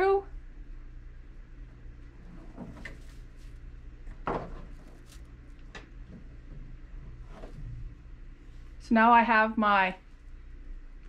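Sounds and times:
low steady hum: 0.0 - 11.0
rope rustling: 4.6 - 5.7.

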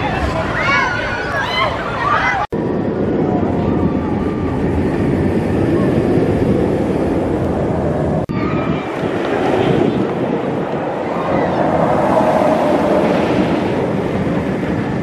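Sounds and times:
roller coaster train roaring: 0.0 - 15.0.

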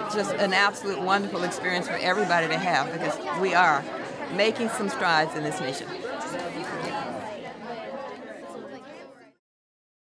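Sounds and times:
hubbub of overlapping voices: 0.0 - 9.4.

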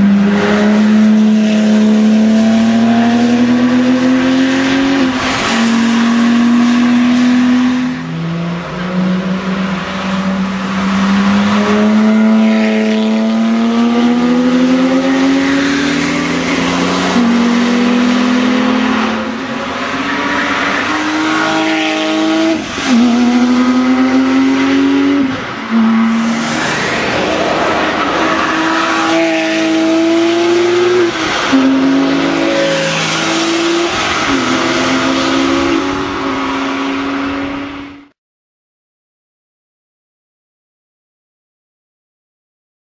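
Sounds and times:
race car engines passing at high revs: 0.0 - 38.1.

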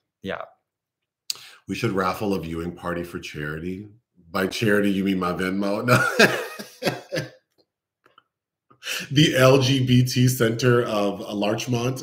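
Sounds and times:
man laughing: 5.6 - 7.3, 8.9 - 9.7.

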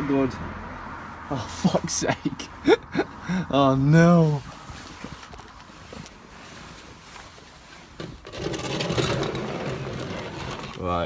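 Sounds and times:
scraping against microphone: 4.2 - 11.0.

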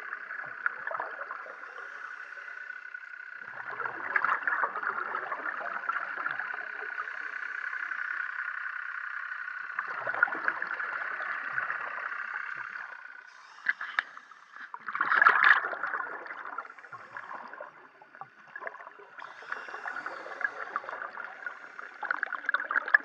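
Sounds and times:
steady underwater hiss: 0.0 - 23.0
scuba regulator exhaling bubbles: 13.6 - 23.0.

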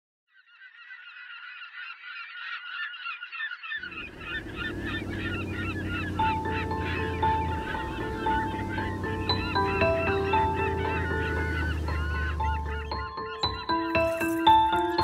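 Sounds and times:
flock of birds calling: 0.4 - 15.0
low steady rumble: 3.8 - 12.9
sustained musical notes: 3.8 - 15.0.

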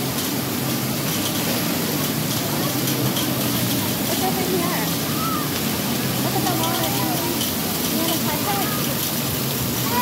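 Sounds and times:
water jets spraying: 0.0 - 10.0.

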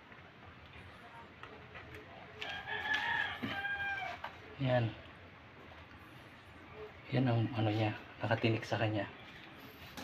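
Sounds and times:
rooster crowing: 2.4 - 4.4.

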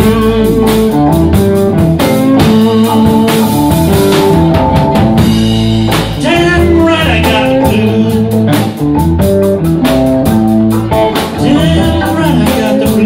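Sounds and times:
bass guitar: 0.0 - 13.0
drum kit: 0.0 - 13.0
electric guitar bending notes: 0.0 - 13.0.

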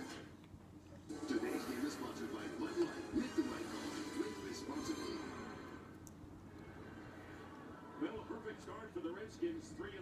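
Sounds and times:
muffled television voices: 0.0 - 10.0
television music: 0.0 - 10.0.

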